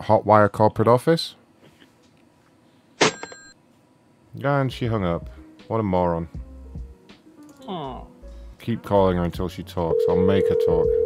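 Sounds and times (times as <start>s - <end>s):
telephone hang-up click: 3.0s - 3.6s.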